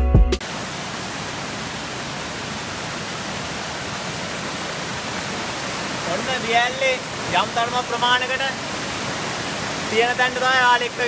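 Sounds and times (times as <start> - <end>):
background music: 0.0 - 0.4
stream rushing over boulders: 0.4 - 11.0.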